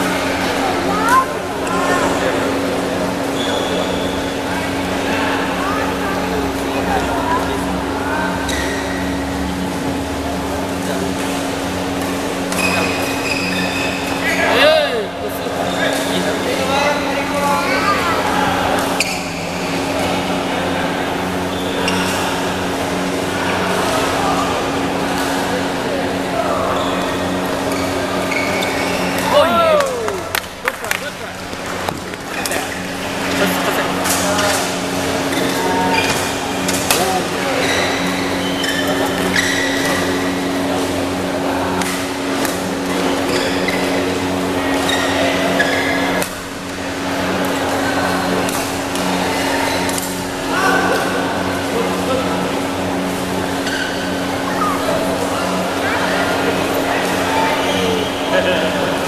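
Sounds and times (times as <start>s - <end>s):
spectators chattering: 0.0s - 59.0s
shoe squeaks on court floor: 3.4s - 4.2s, 8.4s - 9.0s, 12.6s - 14.3s, 19.0s - 19.4s, 27.7s - 29.2s.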